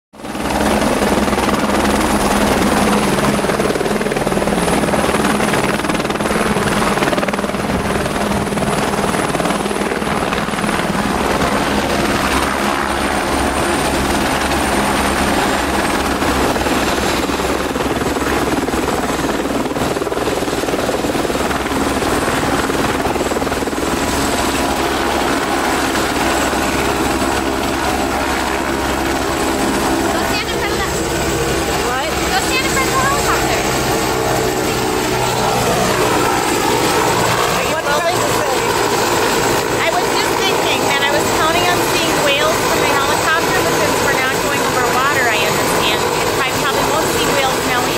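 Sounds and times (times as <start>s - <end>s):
helicopter rotor and turbine noise: 0.1s - 47.9s.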